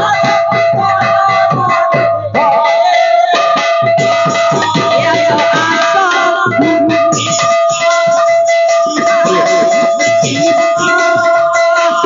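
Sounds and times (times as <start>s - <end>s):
barrel drum beating: 0.0s - 12.0s
hand cymbals ringing: 0.0s - 12.0s.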